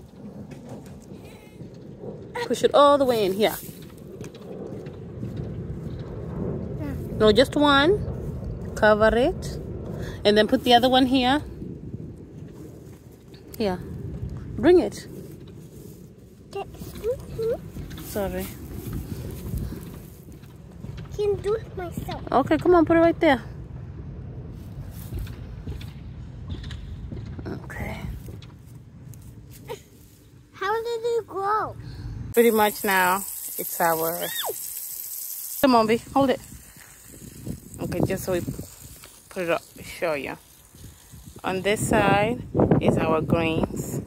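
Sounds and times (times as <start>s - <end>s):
rustling of soil: 0.0s - 22.6s, 24.5s - 31.4s, 32.3s - 44.0s
low rumbling noise: 0.0s - 44.0s.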